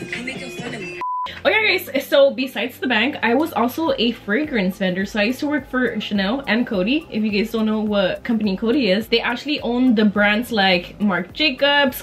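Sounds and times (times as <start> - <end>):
background music: 0.0 - 12.0
woman talking: 0.0 - 12.0
electronic beep: 0.2 - 1.4.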